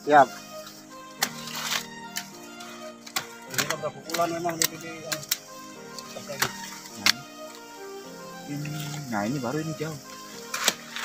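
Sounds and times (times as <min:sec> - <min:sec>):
background music with held notes: 0:00.0 - 0:11.0
pruning shears snipping branches: 0:01.2 - 0:07.7, 0:10.1 - 0:11.0.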